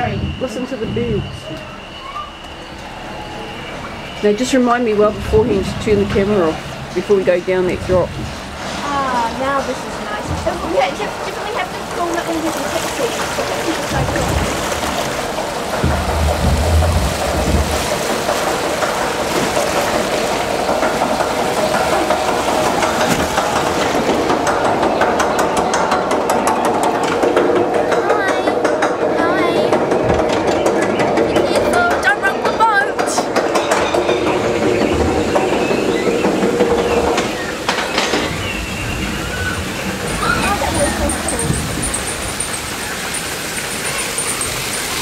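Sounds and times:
churning water rushing: 0:00.0 - 0:45.0
rapid rattling clatter: 0:05.2 - 0:45.0.

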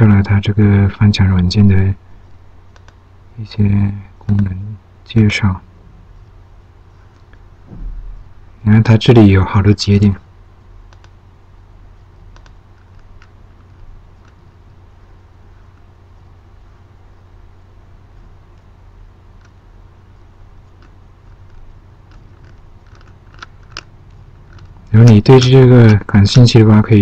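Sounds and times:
person speaking: 0:00.0 - 0:02.1, 0:03.3 - 0:05.8, 0:07.7 - 0:10.3, 0:24.4 - 0:27.0
low electrical hum: 0:00.0 - 0:27.0
computer mouse click: 0:02.7 - 0:03.0, 0:10.9 - 0:11.2, 0:12.3 - 0:14.4
computer mouse scroll clicks: 0:02.7 - 0:03.0, 0:10.9 - 0:11.2, 0:12.2 - 0:14.6, 0:20.6 - 0:25.2.

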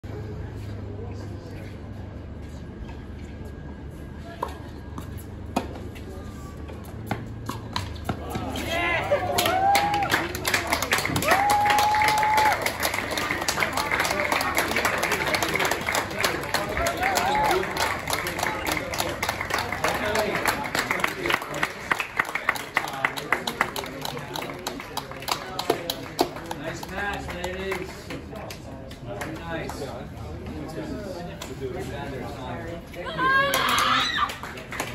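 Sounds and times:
people talking: 0:08.0 - 0:11.2, 0:13.0 - 0:34.9
scattered applause: 0:08.4 - 0:29.9, 0:33.2 - 0:34.9.

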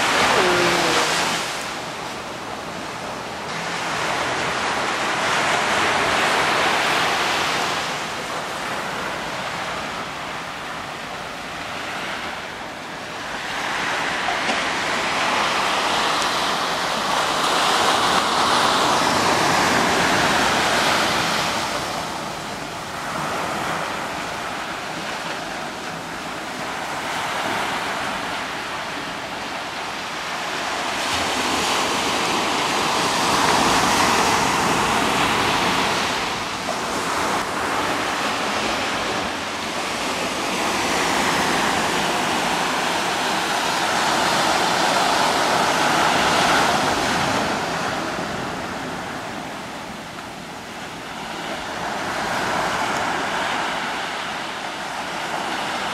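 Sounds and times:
ocean surf on beach: 0:00.0 - 0:55.9.

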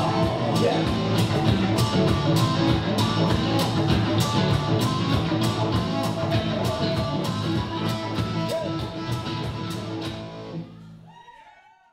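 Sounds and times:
live band with electric guitars: 0:00.0 - 0:10.7.

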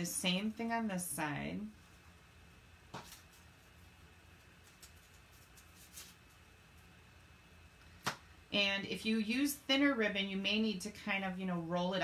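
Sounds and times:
faint small clicks and rustles: 0:04.6 - 0:06.9.

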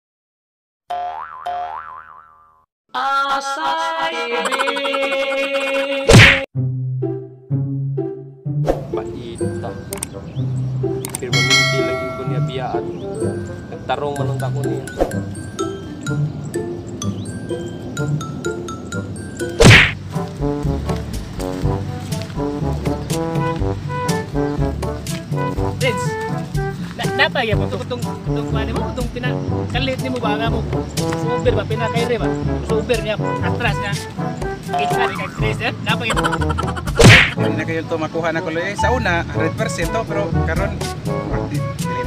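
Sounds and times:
cartoon boing: 0:00.9 - 0:02.6, 0:34.8 - 0:35.5
whoosh and thwack effect: 0:06.1 - 0:06.5, 0:19.6 - 0:20.0, 0:36.9 - 0:37.4
tinkling tune: 0:11.3 - 0:19.6
rhythmic music: 0:17.5 - 0:37.6, 0:38.8 - 0:42.0.

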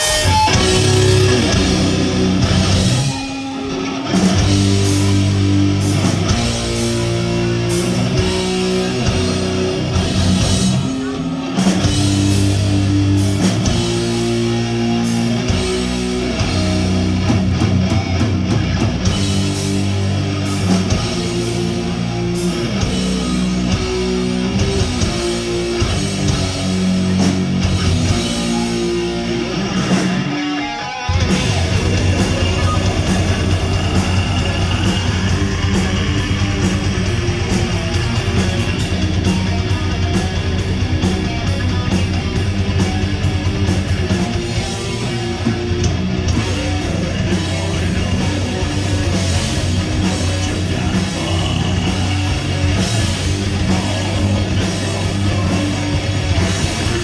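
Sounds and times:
heavy metal band playing live: 0:00.0 - 0:57.0.

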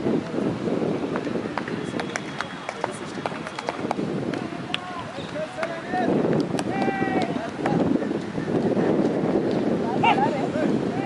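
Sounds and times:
background voices murmuring: 0:00.0 - 0:11.0.

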